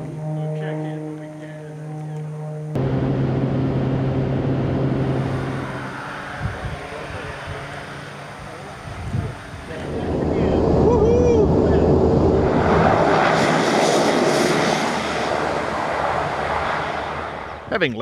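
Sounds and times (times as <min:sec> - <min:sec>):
rising and falling tone: 0:00.0 - 0:07.0, 0:09.7 - 0:17.6
propeller plane engine drone: 0:00.0 - 0:18.0
rushing air: 0:02.8 - 0:17.7.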